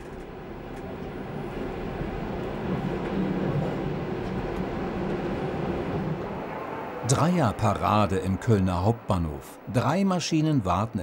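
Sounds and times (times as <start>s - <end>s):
train rumbling on rails: 0.0s - 11.0s.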